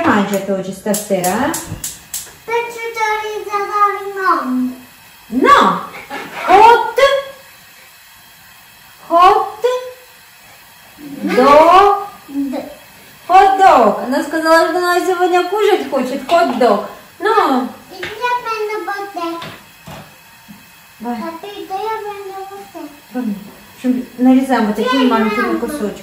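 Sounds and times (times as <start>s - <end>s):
woman's voice: 0.0s - 1.8s, 5.3s - 7.4s, 9.0s - 10.0s, 11.0s - 12.5s, 13.3s - 17.8s, 23.1s - 26.0s
faint steady hiss: 0.0s - 26.0s.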